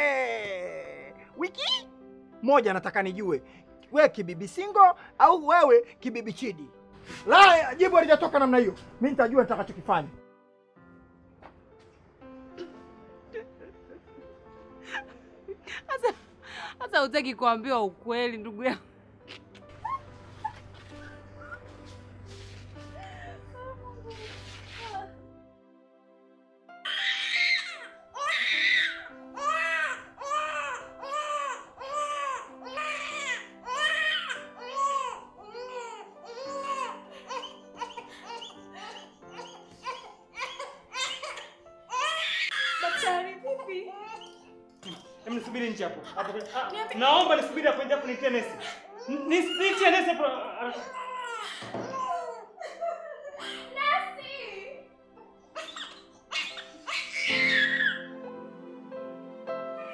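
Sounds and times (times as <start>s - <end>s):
background music chord: 0.0s - 52.4s, 53.3s - 59.9s
soft music bed: 19.3s - 26.4s
infant crying in short wails: 26.9s - 43.1s, 50.7s - 52.6s, 55.6s - 58.1s.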